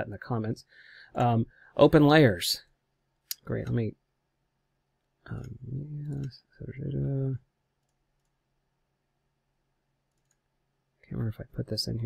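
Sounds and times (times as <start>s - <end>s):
faint clicks: 10.1s - 10.4s.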